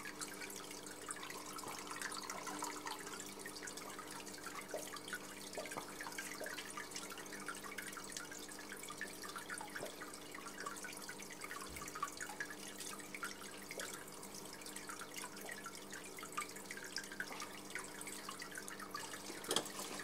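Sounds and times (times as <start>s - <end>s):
faint steady hum: 0.0s - 20.0s
water trickling and dripping: 0.0s - 20.0s.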